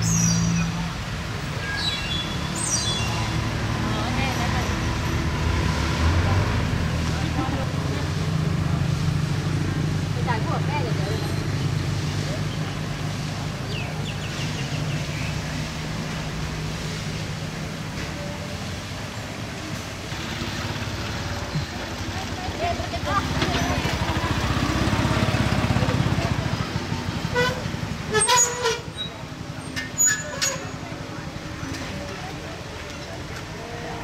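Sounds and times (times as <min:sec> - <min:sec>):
people talking: 0:02.9 - 0:16.2, 0:17.9 - 0:19.8, 0:20.5 - 0:34.0.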